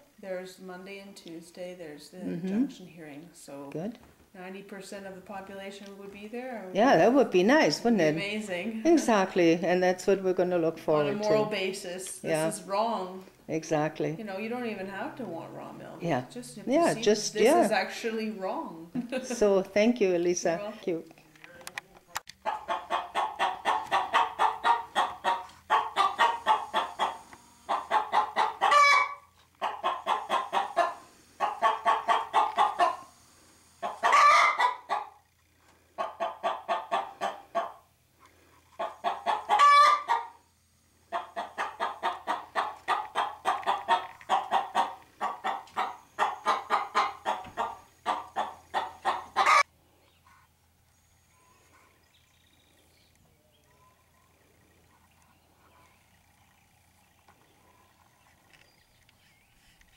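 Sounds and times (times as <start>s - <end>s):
hen clucking: 6.9s - 11.6s, 22.4s - 33.2s, 33.8s - 40.4s, 41.0s - 50.6s
hen squawking: 22.4s - 33.1s, 33.8s - 35.1s, 38.8s - 40.4s, 41.1s - 49.7s.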